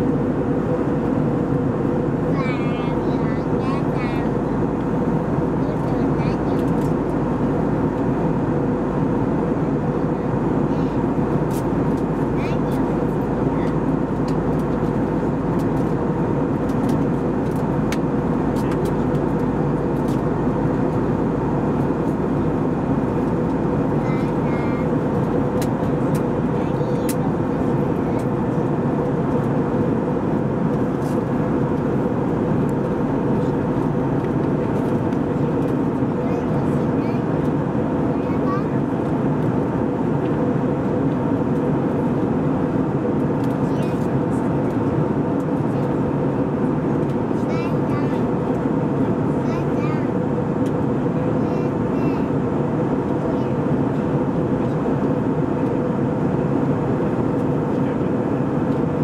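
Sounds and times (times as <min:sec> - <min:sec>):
airplane cabin jet engine roar: 0:00.0 - 0:59.0.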